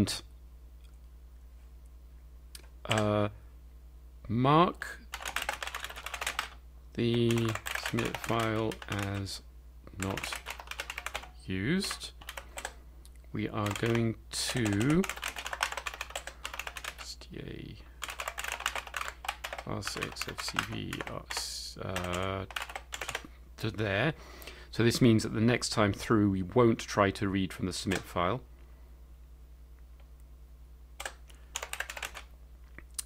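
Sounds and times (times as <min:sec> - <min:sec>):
man speaking indistinctly: 0:02.9 - 0:03.4, 0:07.0 - 0:10.5, 0:11.4 - 0:12.2, 0:13.3 - 0:15.2, 0:16.9 - 0:17.9, 0:19.6 - 0:22.6, 0:23.6 - 0:28.5
keyboard typing: 0:05.1 - 0:09.4, 0:10.0 - 0:12.8, 0:13.6 - 0:17.1, 0:18.0 - 0:23.3, 0:31.0 - 0:32.3.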